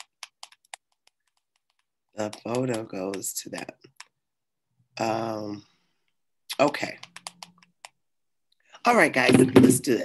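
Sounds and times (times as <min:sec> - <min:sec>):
keyboard typing: 0:00.0 - 0:04.2, 0:06.5 - 0:08.0.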